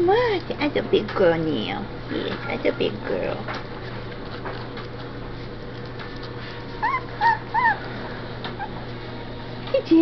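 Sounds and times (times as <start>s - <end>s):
puppy whimpering: 6.7s - 8.9s.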